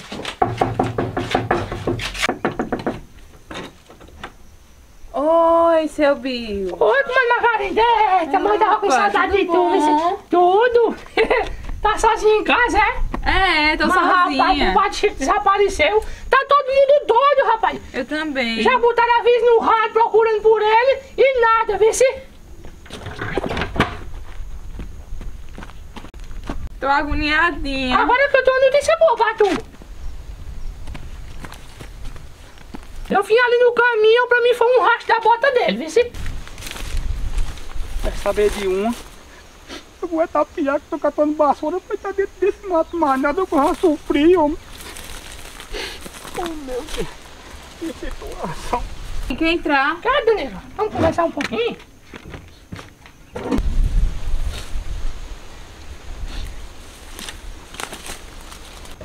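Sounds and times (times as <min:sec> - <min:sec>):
footsteps on dirt: 0:00.0 - 0:02.4, 0:22.6 - 0:26.8, 0:30.8 - 0:33.3, 0:36.1 - 0:39.2, 0:43.4 - 0:49.3, 0:56.8 - 0:59.0
wind buffeting microphone: 0:10.1 - 0:16.9, 0:21.5 - 0:33.1, 0:36.1 - 0:38.6, 0:46.2 - 0:51.3, 0:53.5 - 0:59.0.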